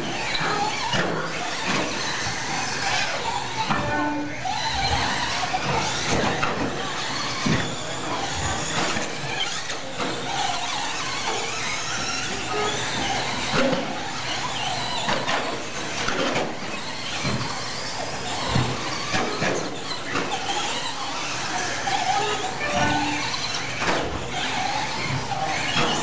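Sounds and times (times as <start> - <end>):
rc car motor whine: 0.0 - 26.0.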